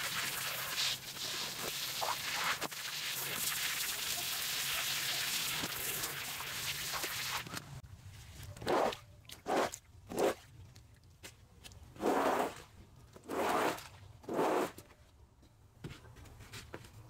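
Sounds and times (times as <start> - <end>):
brush scrubbing wet rug: 0.0 - 7.5, 12.0 - 12.7, 13.3 - 14.8.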